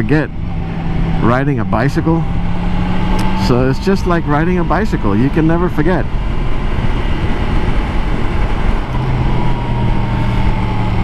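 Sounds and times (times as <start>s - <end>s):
motorcycle engine hum: 0.0s - 11.0s
wind rush and road noise: 0.0s - 11.0s.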